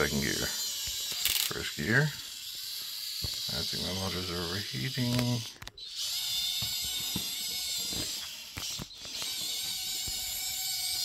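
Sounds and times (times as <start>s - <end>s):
small electric motors whining: 0.0s - 11.0s.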